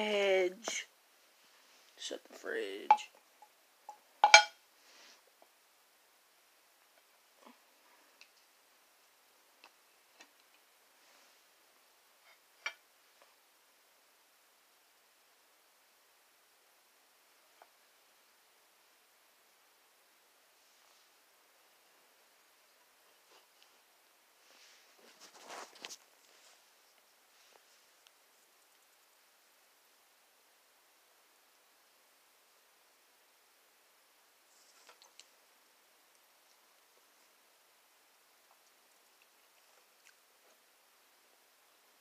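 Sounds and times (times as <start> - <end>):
bottle clicks and taps: 4.2 - 4.5.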